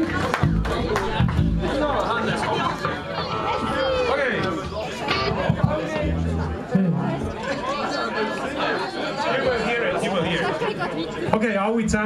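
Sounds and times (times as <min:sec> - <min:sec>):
chatter of many voices: 0:00.0 - 0:12.0
plucked electric instrument notes: 0:03.1 - 0:07.3.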